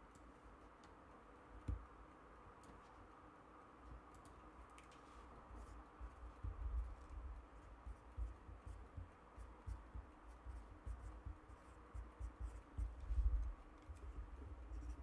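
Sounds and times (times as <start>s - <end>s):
pen scratching on paper: 5.6s - 15.0s
soft low bumps: 5.6s - 15.0s.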